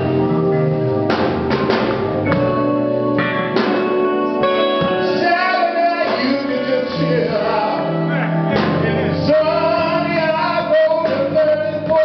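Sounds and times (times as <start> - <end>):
blues band playing: 0.0 - 12.0
man singing: 4.4 - 12.0.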